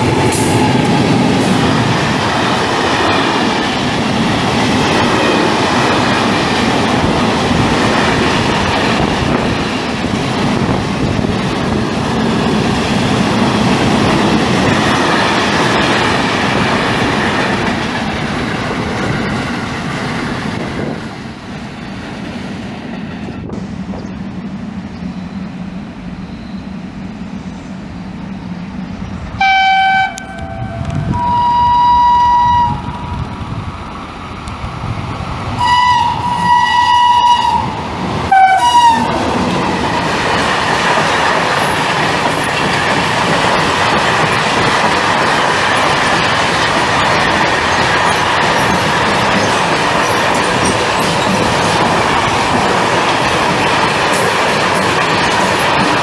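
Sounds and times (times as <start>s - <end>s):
train wheels clickety-clack: 0.0s - 24.1s, 34.4s - 56.0s
two-tone locomotive horn: 29.4s - 33.2s, 35.6s - 39.2s.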